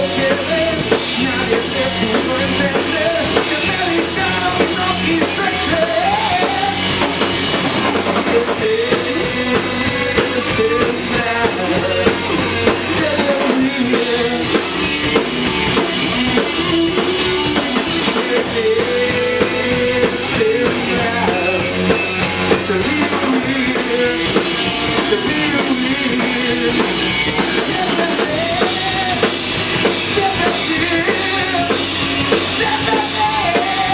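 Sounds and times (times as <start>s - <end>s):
live rock band playing loudly: 0.0s - 33.9s.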